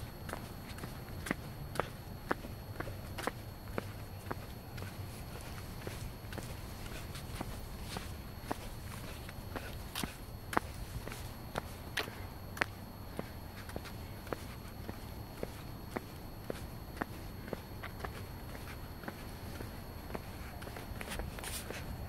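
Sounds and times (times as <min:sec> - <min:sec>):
footsteps on asphalt: 0:00.2 - 0:22.0.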